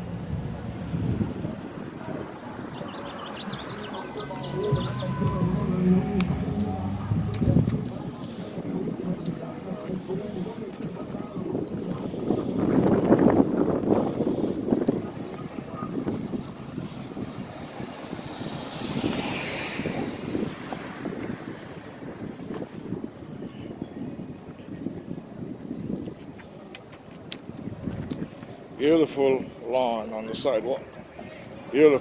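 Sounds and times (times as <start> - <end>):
wind buffeting microphone: 0.0 - 29.6
rough rumble: 3.6 - 15.0.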